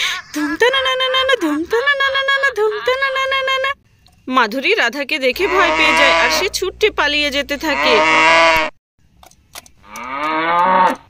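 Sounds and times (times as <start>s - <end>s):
cow mooing: 5.4s - 6.6s, 7.6s - 8.7s, 9.8s - 11.0s.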